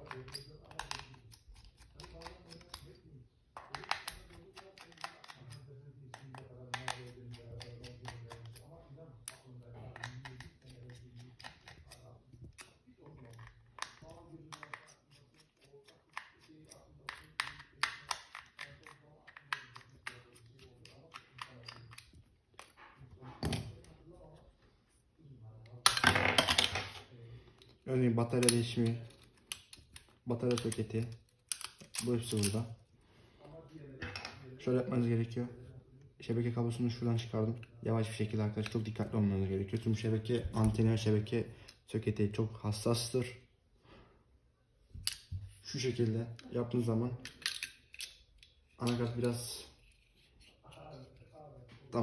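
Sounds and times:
screwdriver clicking and scraping: 0.0 - 3.0.

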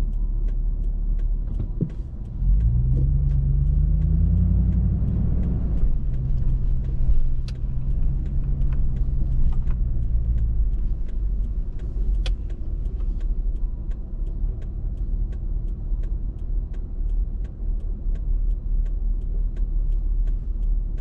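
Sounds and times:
car engine rumble from inside: 0.0 - 21.0
steady ticking: 0.0 - 21.0.

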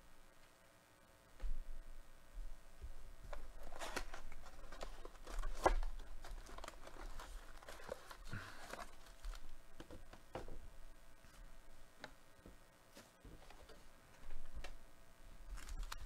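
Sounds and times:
card packs rustling: 3.2 - 11.5, 15.4 - 16.0
wrapping crinkling and tearing: 3.3 - 9.6, 15.5 - 16.0.

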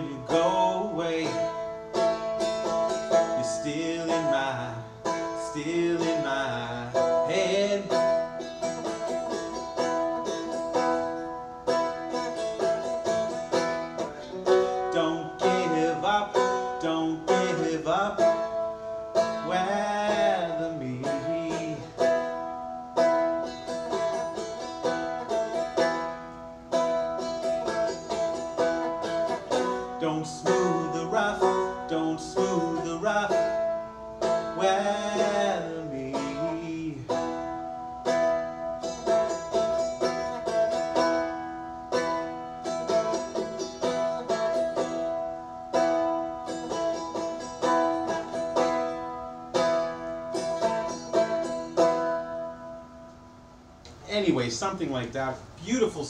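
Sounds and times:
dulcimer strumming: 0.0 - 53.8
person's voice: 54.0 - 56.0.

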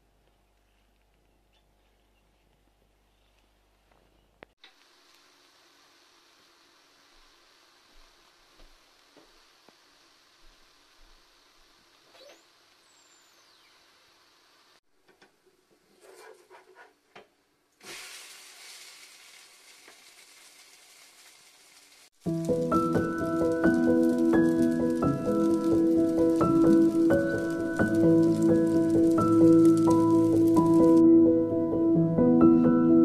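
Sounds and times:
batter sizzling in a frying pan: 4.7 - 14.8, 17.8 - 31.0.

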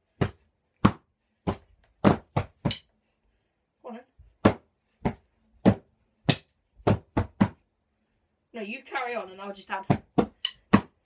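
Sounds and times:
drumsticks striking: 2.6 - 2.9, 10.2 - 10.9.

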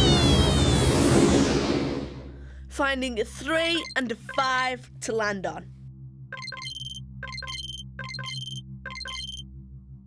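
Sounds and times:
person speaking: 2.8 - 5.7.

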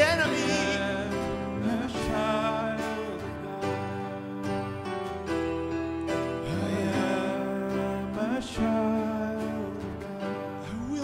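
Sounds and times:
keyboard: 0.0 - 11.0
person singing: 0.0 - 11.0
strummed acoustic guitar: 0.0 - 11.0.

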